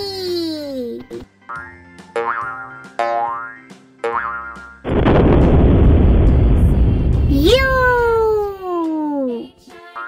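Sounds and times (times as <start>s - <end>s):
children's background music: 0.0s - 4.9s, 6.6s - 10.0s
cartoon explosion: 4.9s - 8.5s.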